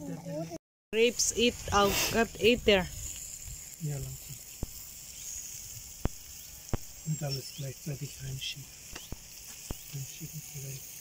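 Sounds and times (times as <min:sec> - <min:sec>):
faint high hiss: 0:01.0 - 0:11.0.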